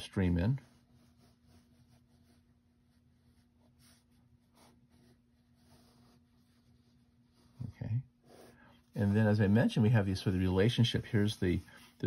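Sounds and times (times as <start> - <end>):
pen scratching on paper: 0.6 - 7.6, 8.2 - 12.0.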